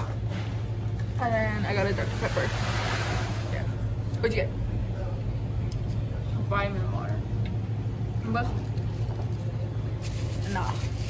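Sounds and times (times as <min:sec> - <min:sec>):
low indoor hum: 0:00.0 - 0:11.0.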